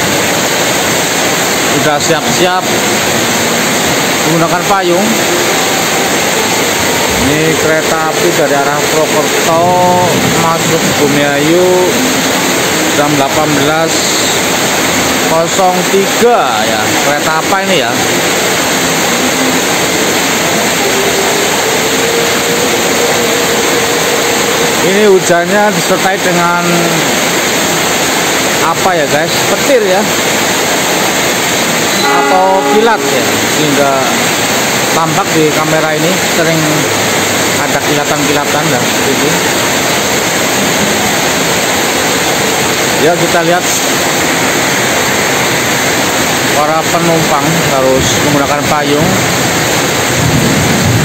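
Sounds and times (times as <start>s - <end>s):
heavy rain pouring: 0.0s - 51.0s
faint train hum: 31.9s - 34.7s.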